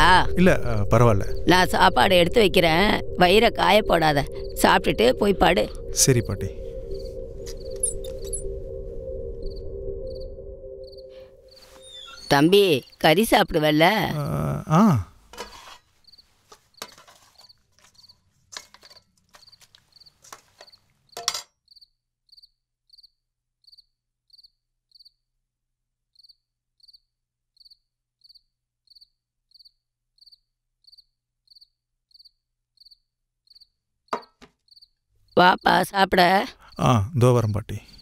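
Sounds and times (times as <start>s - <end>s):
low hum: 0.0s - 12.4s
cricket chirping: 0.0s - 13.2s, 16.0s - 25.2s, 26.1s - 38.0s.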